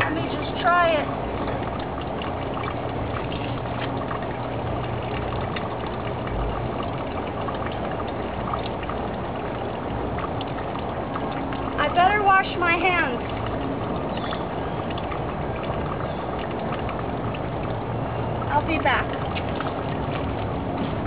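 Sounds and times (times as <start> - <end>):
low motor hum: 0.0 - 21.0.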